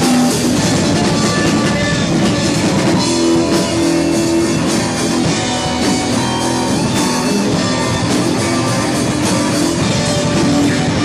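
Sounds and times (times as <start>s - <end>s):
drums: 0.0s - 11.0s
electric guitars: 0.0s - 11.0s
rock band playing live: 0.0s - 11.0s.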